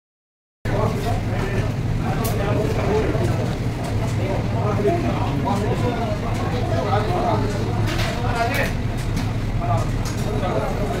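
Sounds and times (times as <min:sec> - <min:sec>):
steady low hum: 0:00.7 - 0:11.0.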